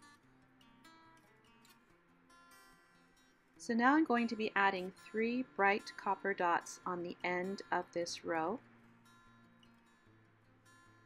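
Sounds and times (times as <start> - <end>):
acoustic guitar plucked notes: 3.6 - 10.2.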